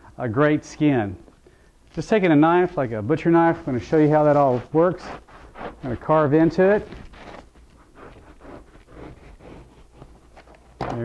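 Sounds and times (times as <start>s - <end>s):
knife sawing through foam: 3.9s - 10.3s.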